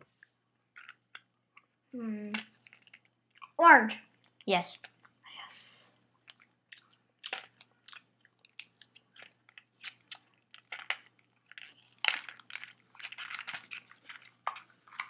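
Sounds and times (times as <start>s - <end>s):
person chewing crunchy food: 0.7s - 1.8s, 2.5s - 3.6s, 6.1s - 15.0s.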